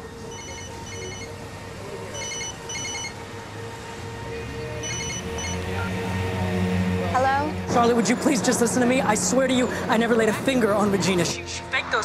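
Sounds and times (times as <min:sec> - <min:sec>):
soft background music: 0:00.0 - 0:12.0
mobile phone ringtone trills: 0:00.3 - 0:01.4, 0:02.1 - 0:03.2, 0:04.8 - 0:06.0.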